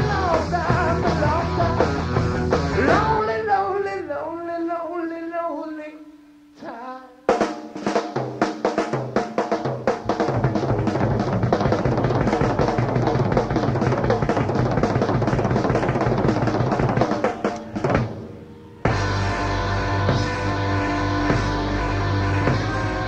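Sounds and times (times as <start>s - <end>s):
rock drum kit playing: 0.0s - 3.3s, 7.3s - 23.0s
drum roll on snare and toms: 7.3s - 18.3s
bass drum thumps: 9.8s - 18.2s.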